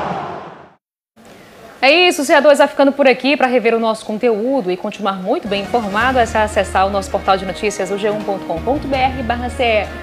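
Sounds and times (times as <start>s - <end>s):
woman's voice: 1.8s - 10.0s.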